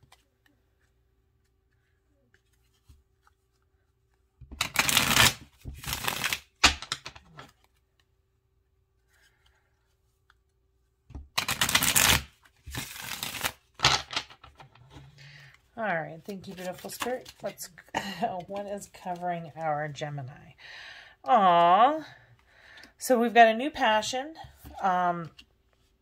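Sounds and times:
cards being shuffled: 0.0 - 8.1, 9.0 - 15.5, 16.3 - 19.6.

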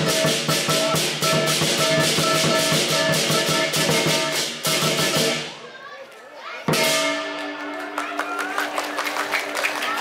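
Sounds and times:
drumming: 0.0 - 5.6, 6.6 - 10.0.

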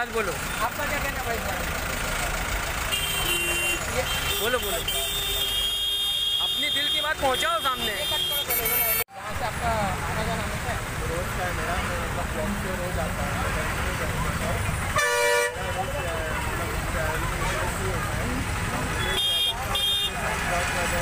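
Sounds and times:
people talking: 0.0 - 21.0
traffic noise: 0.0 - 21.0
vehicle horns honking: 2.7 - 9.0, 14.8 - 18.1, 18.8 - 21.0.

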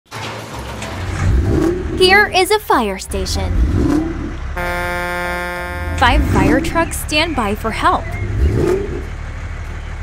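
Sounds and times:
vehicle engine rumbling and revving: 0.1 - 10.0.

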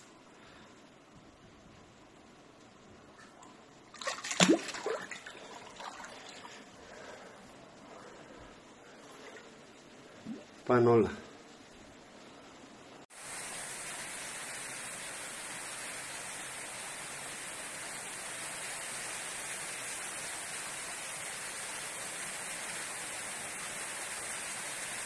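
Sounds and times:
steady rushing hiss: 0.0 - 3.9, 4.8 - 25.0.

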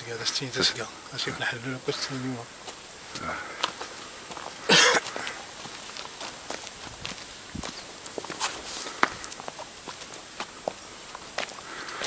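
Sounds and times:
footsteps on stony dirt path: 0.6 - 12.0.

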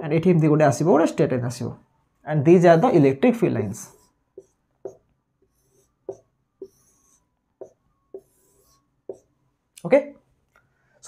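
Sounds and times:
marker scratching on whiteboard: 3.7 - 9.5
marker squeaking on whiteboard: 3.8 - 9.5.

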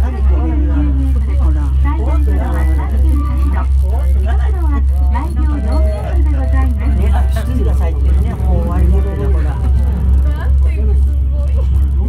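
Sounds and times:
gondola cabin rumble: 0.0 - 12.0
person speaking: 4.8 - 10.5.

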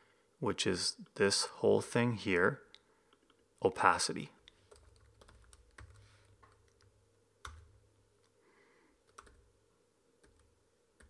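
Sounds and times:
faint keyboard typing: 4.4 - 8.4, 9.0 - 9.6, 10.2 - 11.0.

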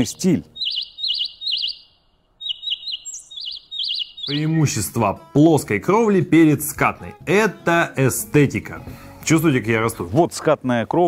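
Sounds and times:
small bird chirping: 0.0 - 4.8.

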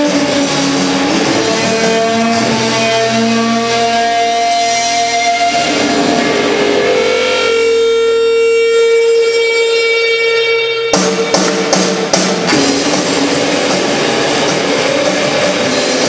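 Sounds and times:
distorted electric guitar drone: 0.0 - 16.0
drum hit: 0.1 - 7.0, 11.0 - 16.0.

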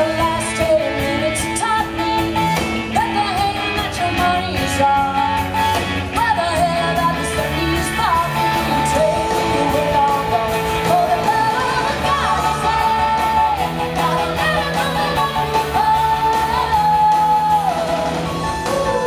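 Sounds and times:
live rock band playing: 0.0 - 19.0.

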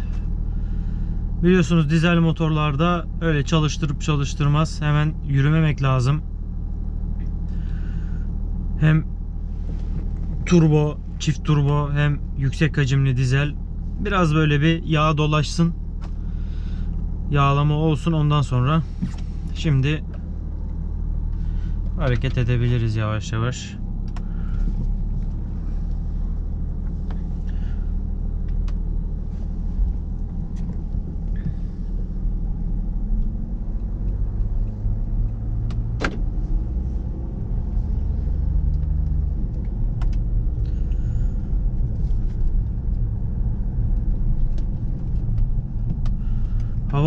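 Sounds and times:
car engine and road noise: 0.0 - 47.0.

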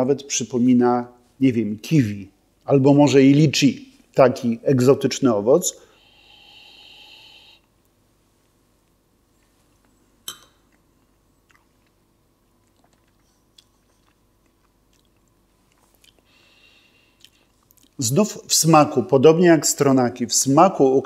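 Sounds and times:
man sniffing: 5.8 - 7.6
quiet mouth sounds: 5.8 - 7.7, 10.8 - 18.0.

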